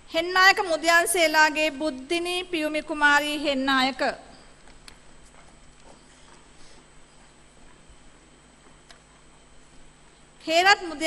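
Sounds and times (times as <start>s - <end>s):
footsteps on stage: 4.6s - 10.3s.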